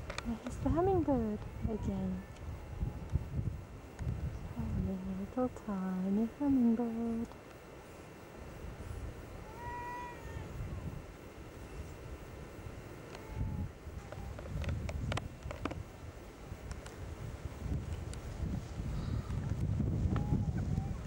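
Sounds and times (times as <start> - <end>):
wind rumble on microphone: 0.0 - 7.3, 8.6 - 21.0
animal call: 9.4 - 10.8.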